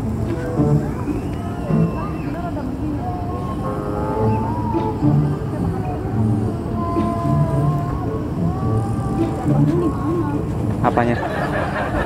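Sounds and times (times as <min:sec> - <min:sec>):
people talking quietly: 0:00.0 - 0:12.0
road traffic rumble: 0:00.0 - 0:12.0.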